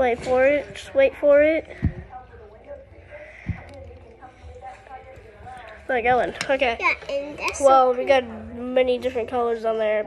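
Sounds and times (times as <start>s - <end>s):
faint voices: 0.0s - 10.0s
child's voice: 6.4s - 10.0s.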